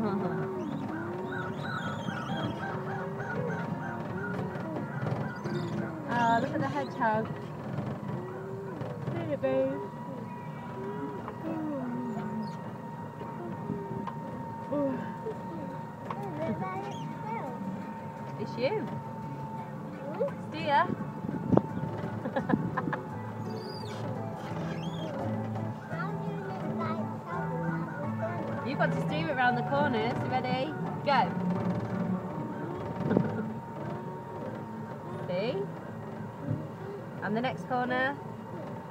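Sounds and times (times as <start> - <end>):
faint voices: 0.0 - 38.9
kiddie ride high hum: 0.0 - 38.9.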